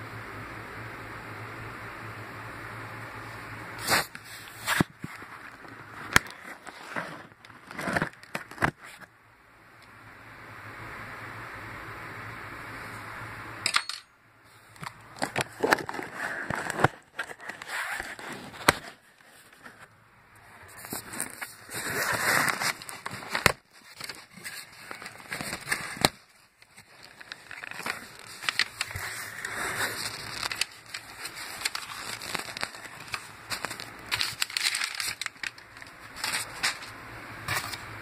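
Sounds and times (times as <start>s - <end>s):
packing paper rustling: 3.8s - 9.0s, 14.7s - 19.9s, 20.7s - 38.0s
cardboard flaps scraping: 3.8s - 9.1s, 15.1s - 19.9s, 20.7s - 38.0s
cardboard snapping: 21.9s - 36.9s.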